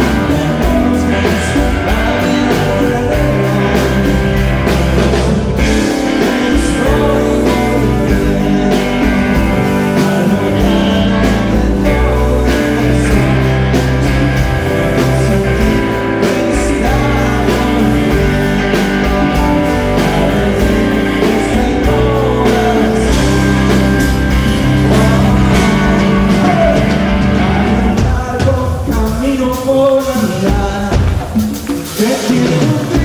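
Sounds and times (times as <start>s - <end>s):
live rock band playing: 0.0s - 33.0s.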